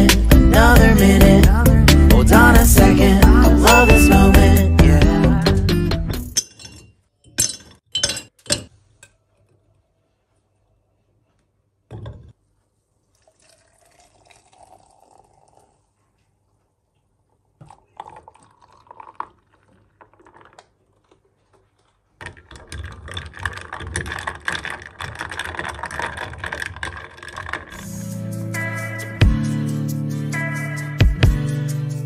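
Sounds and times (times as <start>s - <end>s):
music: 0.0s - 6.4s, 27.8s - 32.0s
ice clinking in glass: 3.7s - 5.2s
coffee pouring over ice: 13.1s - 15.9s, 17.6s - 27.8s.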